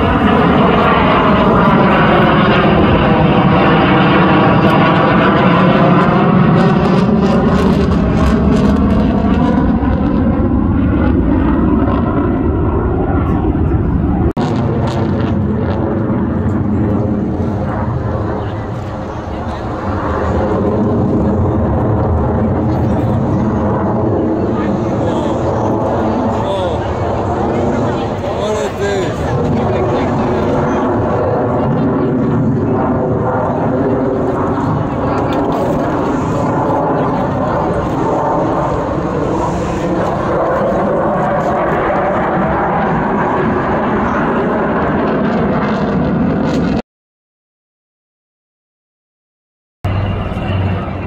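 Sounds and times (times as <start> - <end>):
fighter jet engine roar: 0.0 - 46.8, 49.8 - 51.0
people talking nearby: 18.1 - 40.4.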